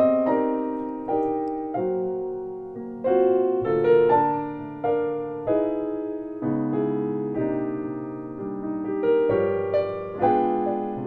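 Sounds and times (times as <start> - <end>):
piano chords ringing: 0.0 - 11.0.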